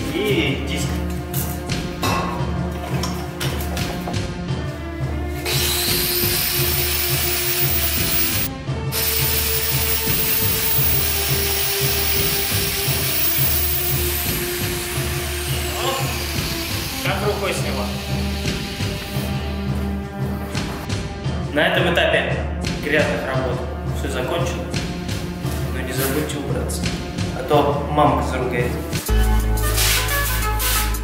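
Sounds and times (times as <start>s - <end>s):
background music with steady beat: 0.0s - 31.0s
angle grinder grinding metal: 5.4s - 19.7s.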